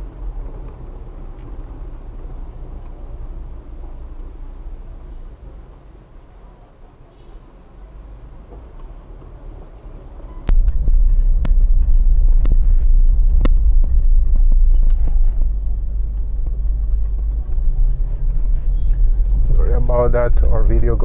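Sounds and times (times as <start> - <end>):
car engine rumble and road noise: 0.0 - 21.0.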